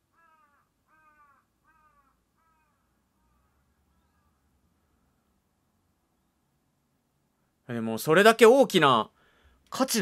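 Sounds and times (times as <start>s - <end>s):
faint falling bird calls: 0.0s - 4.6s.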